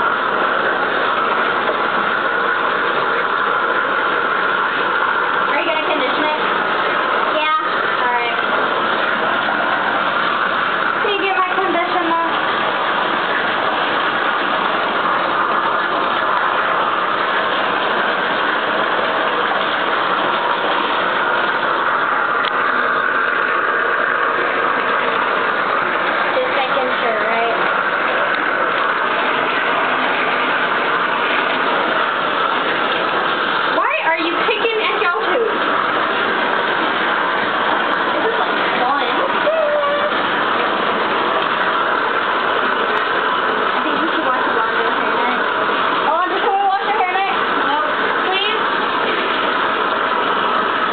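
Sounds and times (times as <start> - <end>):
water running into bathtub: 0.0 - 50.9.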